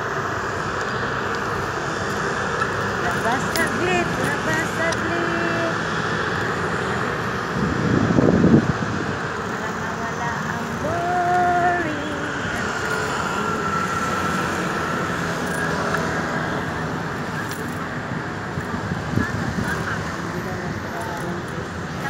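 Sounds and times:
road traffic noise: 0.0s - 22.0s.

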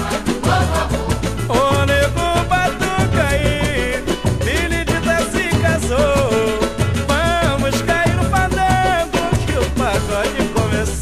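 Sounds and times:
samba band playing: 0.0s - 11.0s
steady percussion beat: 0.0s - 11.0s.

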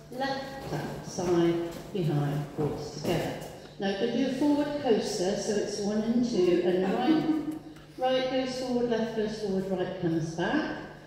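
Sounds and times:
woman speaking: 0.0s - 11.0s.

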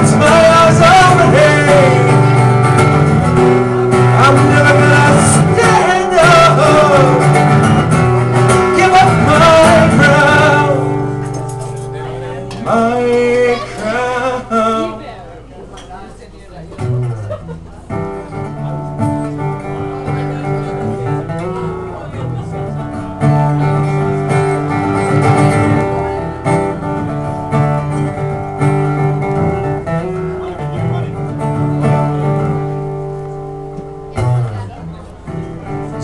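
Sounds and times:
acoustic guitar chords: 0.0s - 15.6s, 16.7s - 36.0s.

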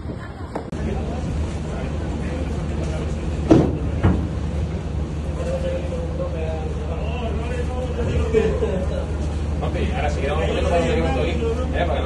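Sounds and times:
ship machinery drone: 0.0s - 12.0s.

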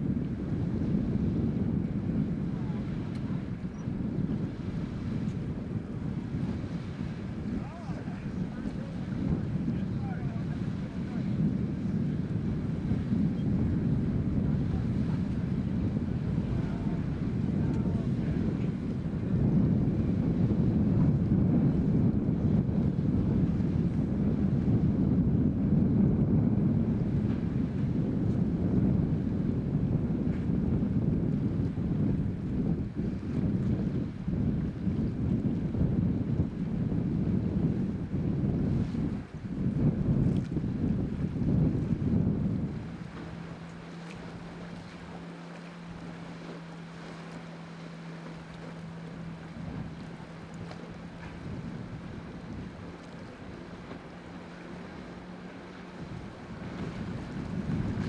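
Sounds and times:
boat engine humming: 0.0s - 58.0s
wind buffeting microphone: 0.0s - 58.0s.

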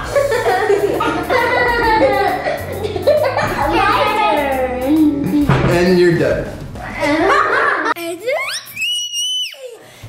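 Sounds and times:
girl squealing: 8.3s - 9.9s.

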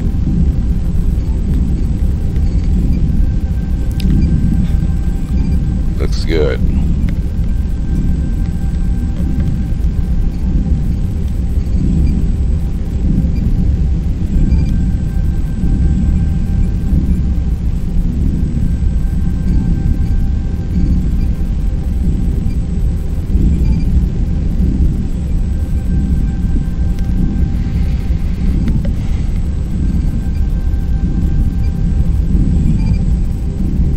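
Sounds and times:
faint crackle: 0.0s - 6.0s, 6.7s - 33.9s
electronic ambient drone: 0.0s - 33.9s.

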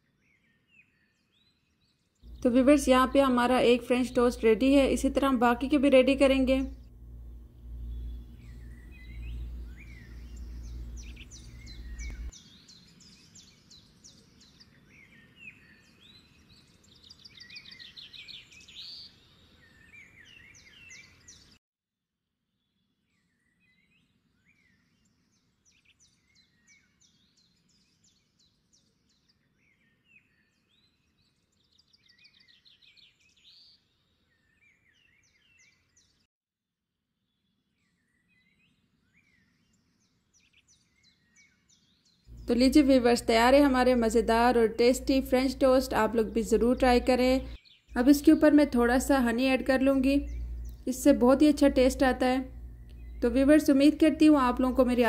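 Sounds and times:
birds chirping and trilling: 0.0s - 21.6s, 23.1s - 36.3s, 37.3s - 55.0s
low hum: 2.3s - 12.3s, 42.3s - 55.0s.

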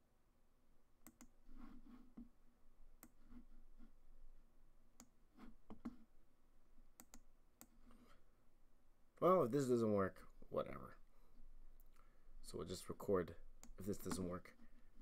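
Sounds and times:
computer clicks: 1.0s - 1.3s, 7.0s - 7.7s.

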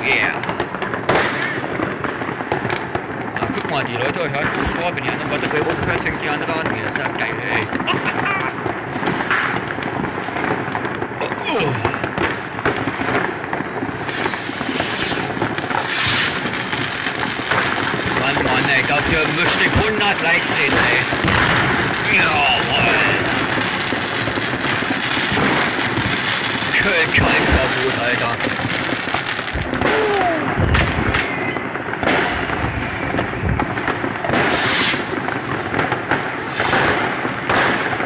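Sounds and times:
firecrackers crackling and banging: 0.0s - 38.0s
whistling rockets: 12.0s - 38.0s.

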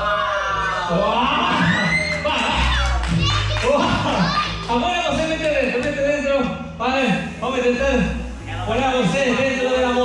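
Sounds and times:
children whooping: 0.0s - 4.6s
background music: 0.0s - 10.0s.

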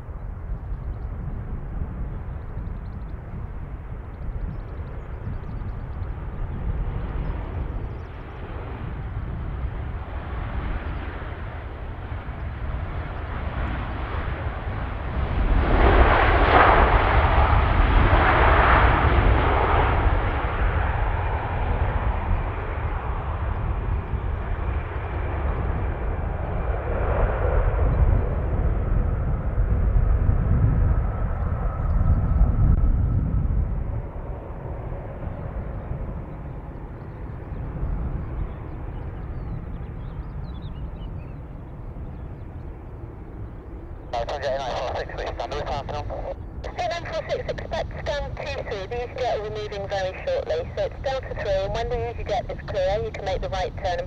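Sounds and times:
jet engines roaring: 5.8s - 40.4s, 41.4s - 54.0s
faint steady whine: 42.6s - 54.0s.

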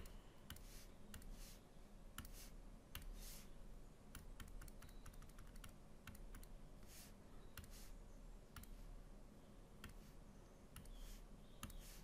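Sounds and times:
computer mouse and key clicks: 0.0s - 1.4s, 2.1s - 3.4s, 4.1s - 6.6s, 7.5s - 7.9s, 8.5s - 8.9s, 9.8s - 10.1s, 10.7s - 12.0s
soft hisses: 0.5s - 3.6s, 6.8s - 8.0s.

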